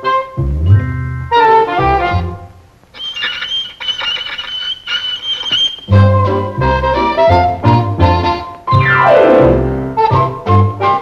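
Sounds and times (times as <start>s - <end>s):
squeaking writing on glass: 3.0s - 5.9s.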